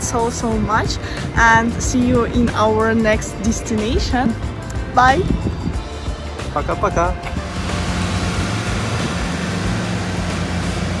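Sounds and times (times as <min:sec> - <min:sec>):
airliner rushing noise with hum: 0:07.3 - 0:11.0.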